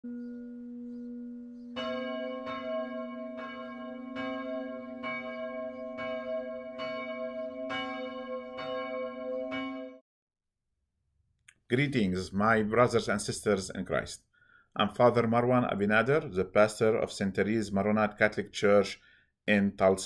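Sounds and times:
church bell tolling: 0:00.0 - 0:10.0.

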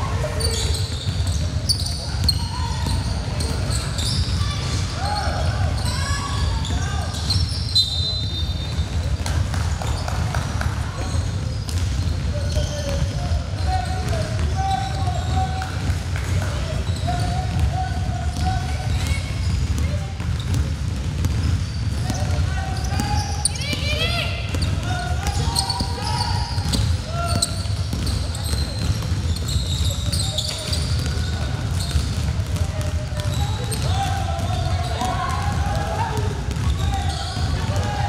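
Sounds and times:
players calling out: 0:00.0 - 0:10.2, 0:21.4 - 0:38.0.

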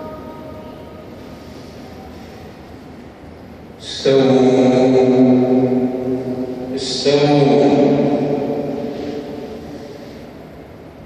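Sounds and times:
man chanting prayer: 0:03.8 - 0:10.0.

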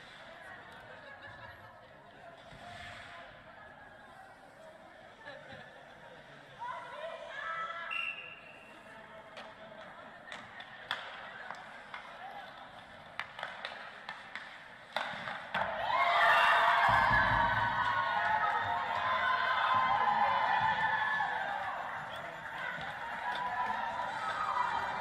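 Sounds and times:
skates stick and puck on ice: 0:09.3 - 0:16.2, 0:16.9 - 0:25.0
women cheering and screaming: 0:15.7 - 0:25.0.

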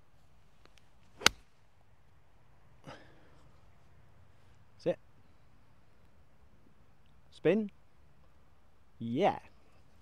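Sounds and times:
golf club striking ball: 0:01.2 - 0:01.5.

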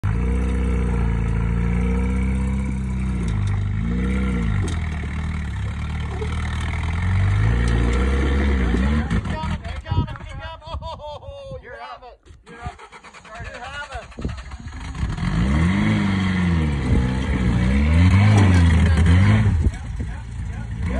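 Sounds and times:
truck engine revving: 0:00.0 - 0:09.6, 0:12.6 - 0:20.9.

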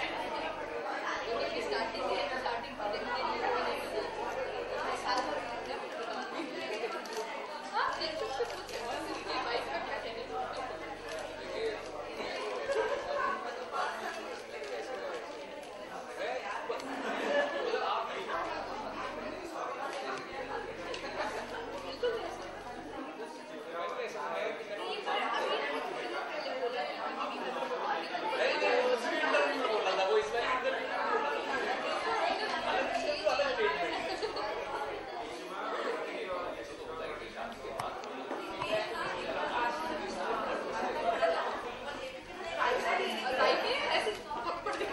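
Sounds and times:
people talking over one another: 0:00.0 - 0:44.9.

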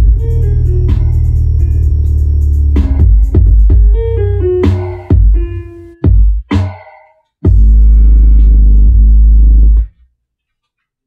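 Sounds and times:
deep bass note: 0:00.0 - 0:05.9, 0:07.5 - 0:09.8
bass-heavy music from speaker: 0:00.0 - 0:10.1.

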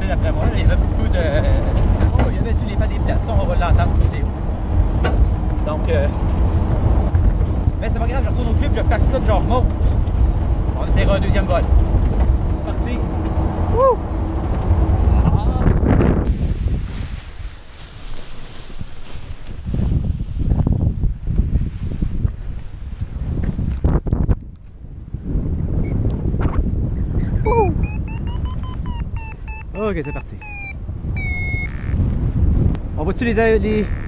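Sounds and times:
wind buffeting microphone: 0:00.0 - 0:34.0
variometer beeping rising pitch: 0:27.5 - 0:32.1.

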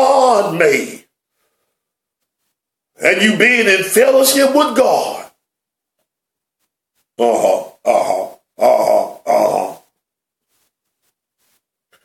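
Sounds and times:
man saying uh-huh: 0:07.2 - 0:09.9.

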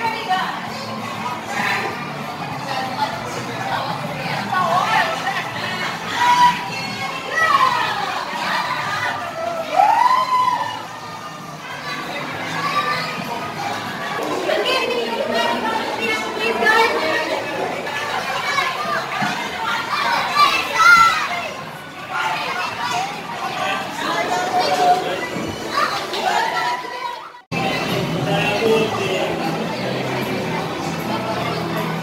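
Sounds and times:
crowd chatter and raised voices: 0:00.0 - 0:32.0.

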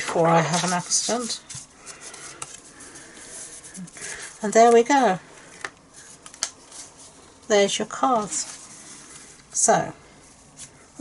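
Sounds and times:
cardstock card rustling and sliding: 0:00.0 - 0:04.8.

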